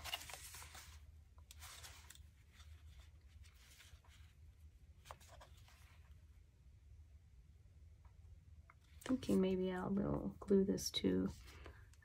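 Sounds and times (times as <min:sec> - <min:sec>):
paper rustling: 0:00.0 - 0:06.2
low room hum: 0:00.0 - 0:12.0.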